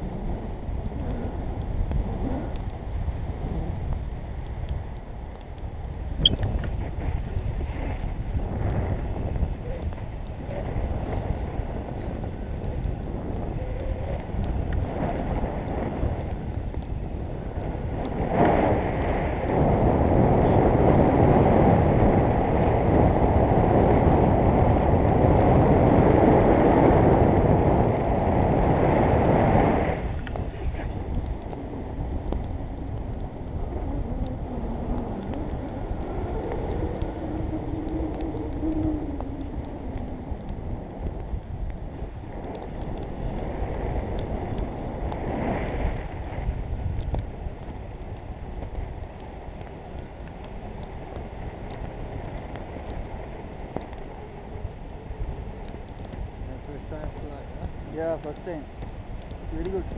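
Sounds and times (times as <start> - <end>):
wind rushing over microphone: 0.0 - 59.9.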